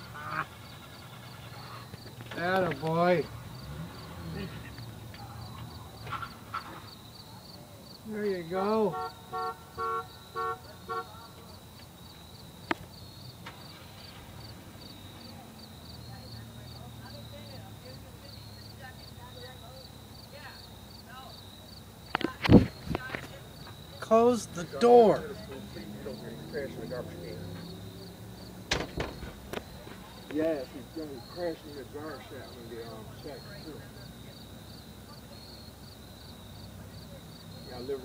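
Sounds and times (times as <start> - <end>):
insects chirping: 0.0 - 38.0
car horn toots: 8.8 - 11.2
sharp knocks: 28.7 - 29.7.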